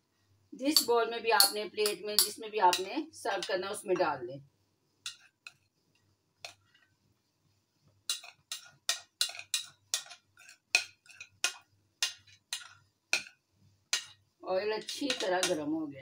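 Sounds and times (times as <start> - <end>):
spoon scraping a bowl: 5.0 - 5.7, 8.0 - 14.2.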